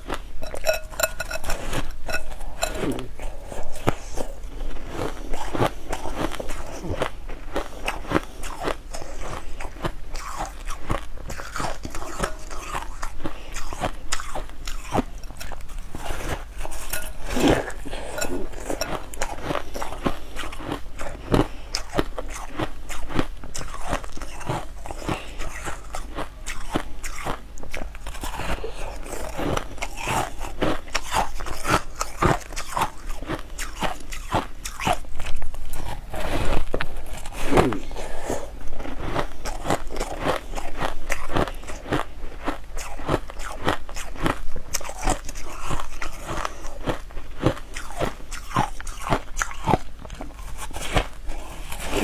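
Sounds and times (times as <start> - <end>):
chewing: 0.0 - 52.0.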